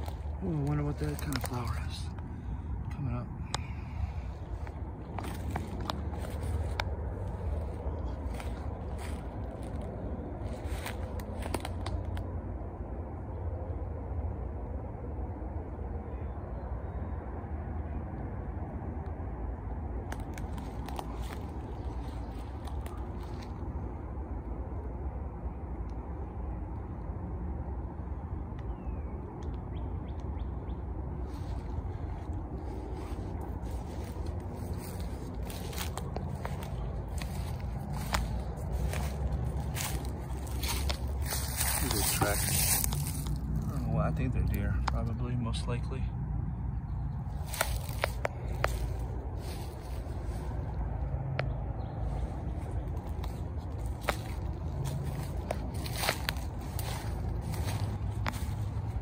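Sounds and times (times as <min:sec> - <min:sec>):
rustling of leaves and undergrowth: 0:00.0 - 0:12.3, 0:20.0 - 0:24.4, 0:31.1 - 0:45.8, 0:46.9 - 0:59.0
wind rumbling on microphone: 0:00.0 - 0:45.1, 0:46.3 - 0:59.0.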